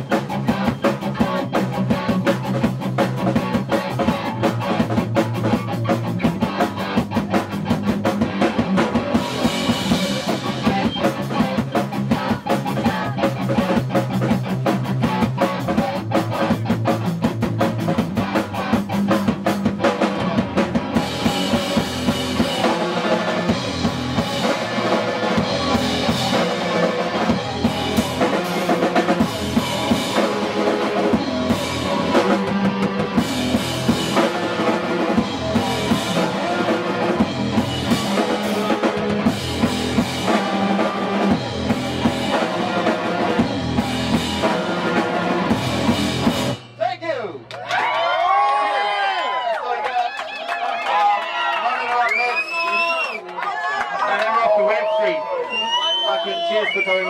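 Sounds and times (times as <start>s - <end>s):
live rock band playing: 0.0s - 47.0s.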